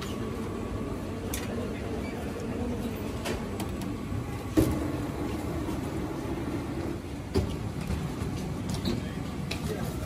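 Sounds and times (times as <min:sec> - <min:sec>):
conveyor belt humming: 0:00.0 - 0:10.0
conveyor belt sharp thump: 0:04.5 - 0:05.7.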